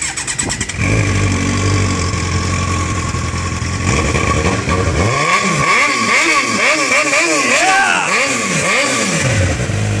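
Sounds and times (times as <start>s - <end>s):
motorcycle engine revving and idling: 0.0s - 10.0s.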